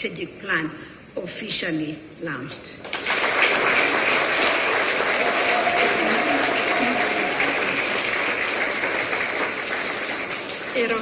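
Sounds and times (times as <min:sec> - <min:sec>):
audience applauding: 0:02.8 - 0:11.0.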